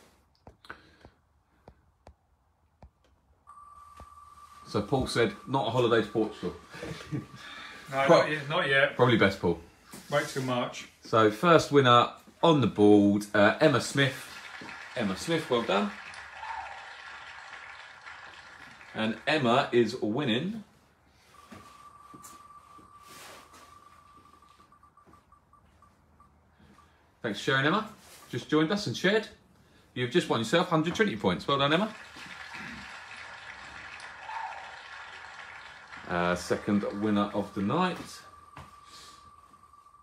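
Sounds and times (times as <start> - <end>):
steady high-pitched tone: 3.5 - 9.4, 21.3 - 26.8, 35.9 - 40.0
fast electronic ticking: 35.4 - 40.0.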